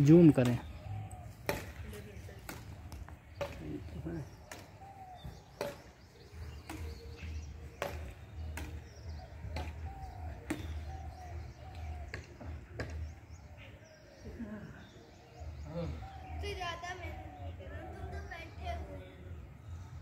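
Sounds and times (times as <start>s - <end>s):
rackets striking shuttlecock: 1.4s - 13.1s.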